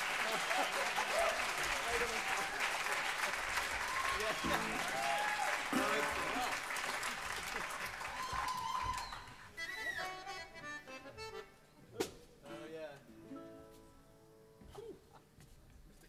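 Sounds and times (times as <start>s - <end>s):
audience applause and cheering: 0.0s - 10.0s
held whistle: 8.6s - 10.2s.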